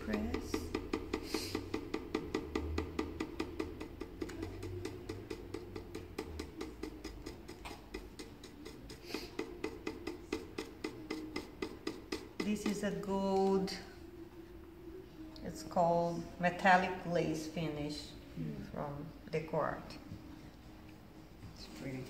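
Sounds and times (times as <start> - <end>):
stencil brush dabbing on wood: 0.0 - 13.9.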